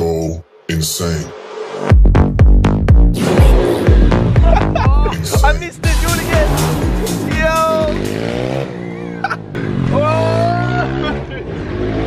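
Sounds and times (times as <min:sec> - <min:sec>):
music: 0:00.0 - 0:08.9
voices: 0:04.4 - 0:08.2.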